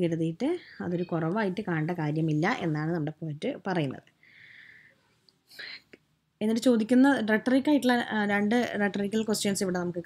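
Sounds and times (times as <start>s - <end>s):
person breathing: 4.2s - 5.9s.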